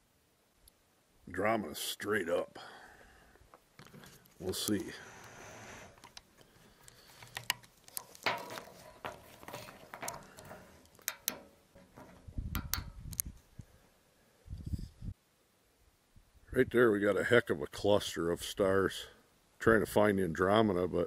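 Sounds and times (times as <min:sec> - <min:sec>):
telescope handling clicks and knocks: 0:05.9 - 0:13.7.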